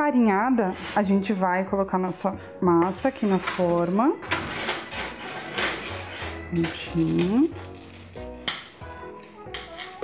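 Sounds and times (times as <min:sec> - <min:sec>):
spatula scraping steel bowl: 0:00.3 - 0:01.4, 0:02.8 - 0:08.4.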